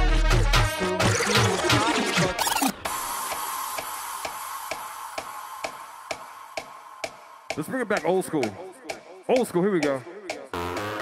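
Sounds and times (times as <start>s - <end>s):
dance track with vocals: 0.0s - 10.8s
hiss with held high tone: 2.9s - 7.5s.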